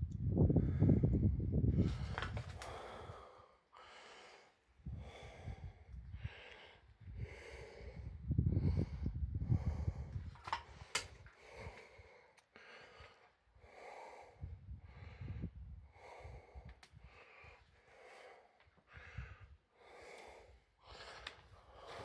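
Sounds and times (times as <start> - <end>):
low rumbling on microphone: 0.0 - 3.0, 7.0 - 10.4
heavy breathing: 1.8 - 22.0.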